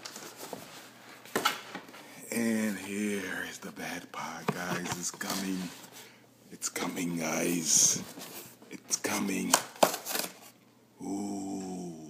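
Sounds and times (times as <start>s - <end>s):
cardboard box handling: 4.4s - 5.8s.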